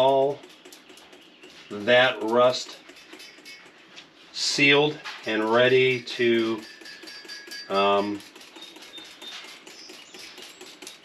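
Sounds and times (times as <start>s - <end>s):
spray bottle squirting: 6.6s - 11.0s.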